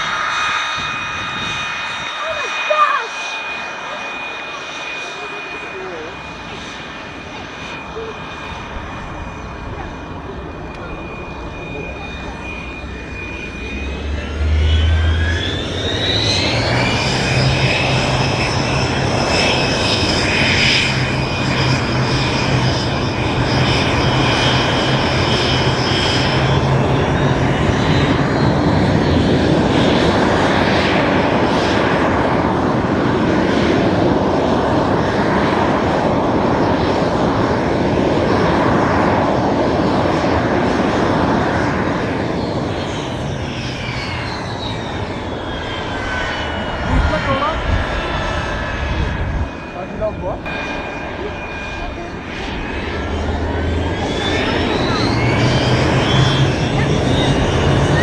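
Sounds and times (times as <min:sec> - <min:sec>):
jet engine whine: 0:00.0 - 0:58.0.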